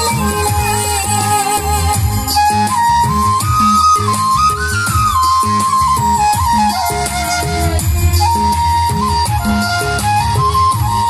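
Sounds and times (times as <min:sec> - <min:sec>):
folk dance music over loudspeaker: 0:00.0 - 0:11.0.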